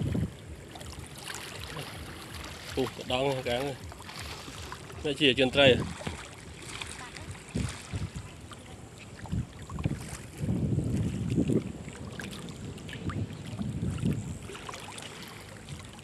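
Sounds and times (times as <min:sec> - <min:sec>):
floodwater sloshing and splashing: 0:00.0 - 0:16.0
wind buffeting microphone: 0:00.0 - 0:16.0.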